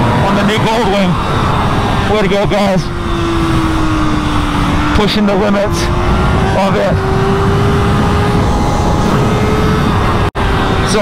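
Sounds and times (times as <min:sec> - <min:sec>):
low wind rumble: 0:00.0 - 0:11.0
motorcycle engine: 0:00.0 - 0:11.0.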